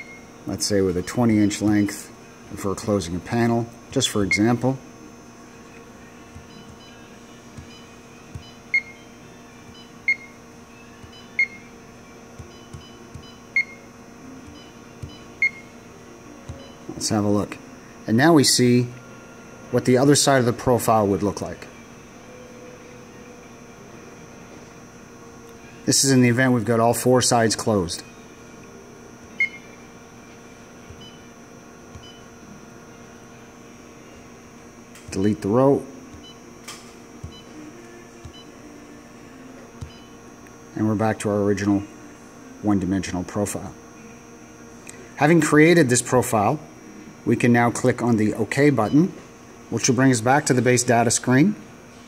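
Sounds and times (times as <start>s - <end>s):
faint high whine: 0.0s - 52.0s
steady electrical hum: 0.0s - 52.0s
short controller beeps: 7.6s - 9.0s, 9.8s - 10.3s, 11.1s - 11.6s, 29.4s - 29.7s.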